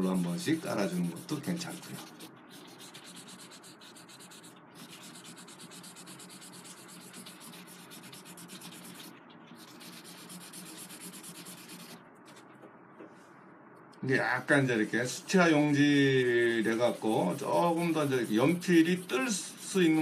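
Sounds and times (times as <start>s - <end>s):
blending stump scrubbing on paper: 0.0s - 12.5s, 15.7s - 20.0s.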